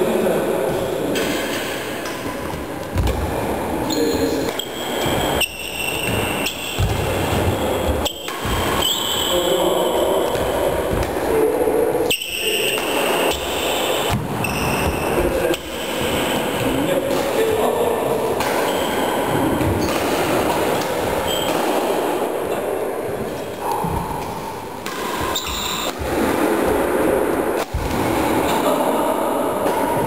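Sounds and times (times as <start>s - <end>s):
murmur of hall: 0.0s - 30.0s
racket hitting shuttlecock: 1.1s - 9.2s, 12.0s - 22.4s, 23.1s - 28.7s
shoes squeaking: 3.8s - 10.7s, 12.1s - 15.2s, 21.2s - 21.6s, 25.2s - 26.0s.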